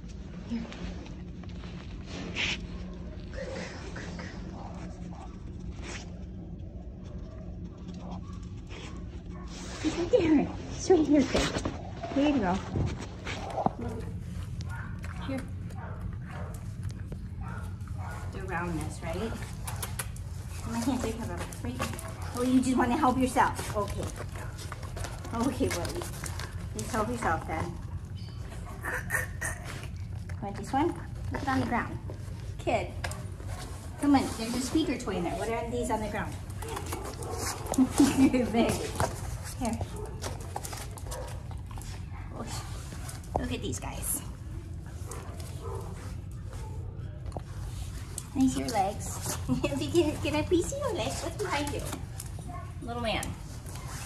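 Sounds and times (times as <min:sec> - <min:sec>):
low hum: 0:00.0 - 0:53.8
dog claws clicking on floor: 0:12.6 - 0:28.4, 0:29.8 - 0:33.8, 0:34.8 - 0:44.1, 0:47.2 - 0:54.0.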